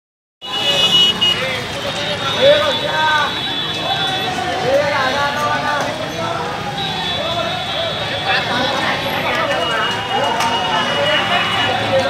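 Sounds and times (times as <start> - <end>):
people's voices: 0.4 - 12.0
street noise: 0.4 - 12.0.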